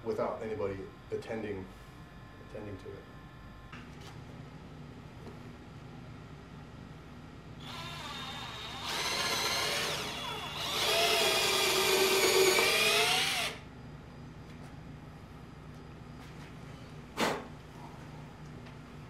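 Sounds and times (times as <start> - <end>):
cordless drill boring into wood: 7.6 - 13.6.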